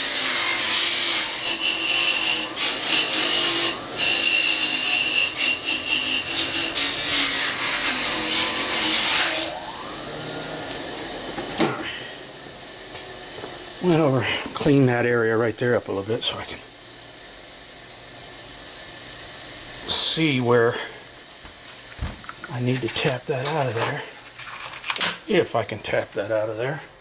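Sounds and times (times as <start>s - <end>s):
wire wheel scrubbing metal: 0.0s - 10.6s
motor winding down: 2.2s - 23.7s.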